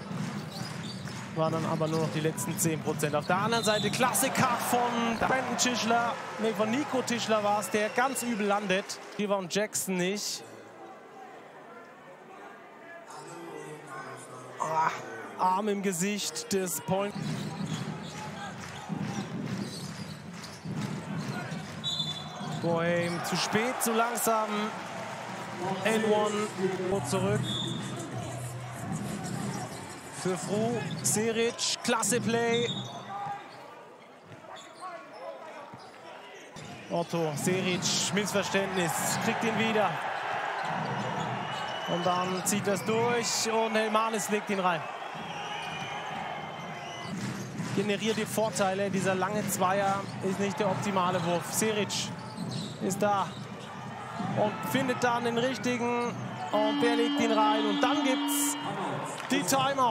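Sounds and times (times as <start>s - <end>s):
large crowd noise indoors: 0.0s - 59.9s
crowd murmur in a large hall: 7.4s - 23.2s, 24.7s - 37.7s.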